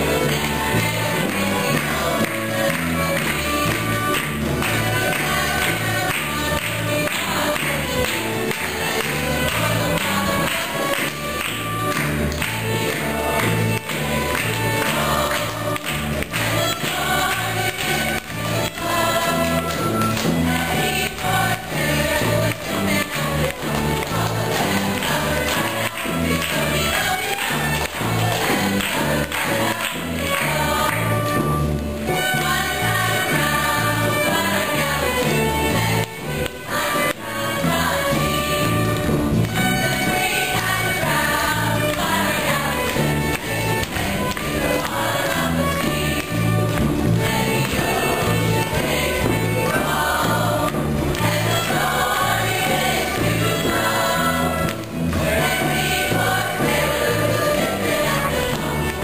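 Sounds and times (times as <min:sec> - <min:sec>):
chorus of voices singing: 0:00.0 - 0:59.0
folk dance tune on fiddles: 0:00.0 - 0:59.0
live band playing: 0:00.0 - 0:59.0.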